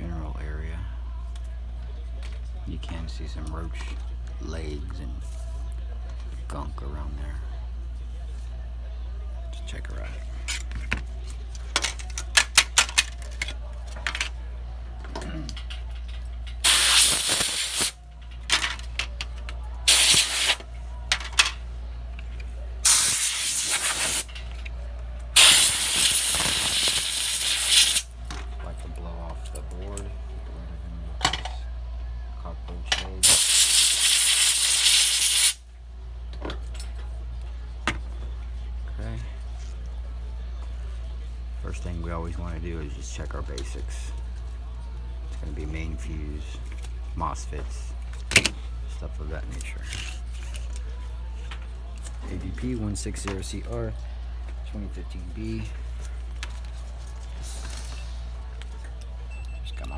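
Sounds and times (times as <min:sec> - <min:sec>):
pressurised spray hissing: 0:16.6 - 0:18.0, 0:19.9 - 0:20.6, 0:22.9 - 0:24.3, 0:25.4 - 0:28.1, 0:33.2 - 0:35.6.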